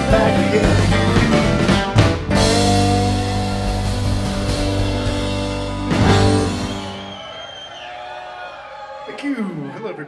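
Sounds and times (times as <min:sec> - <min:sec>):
rock band final chord: 0:00.0 - 0:07.1
crowd cheering and whooping: 0:04.6 - 0:10.0.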